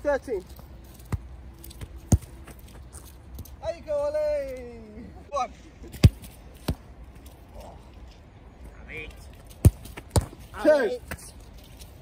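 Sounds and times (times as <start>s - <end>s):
football thuds: 1.0s - 2.7s, 9.5s - 11.3s.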